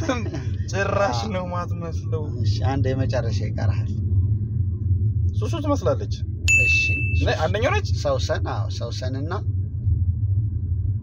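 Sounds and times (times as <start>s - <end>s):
car cabin rumble: 0.0s - 11.0s
bright ding: 6.5s - 7.4s.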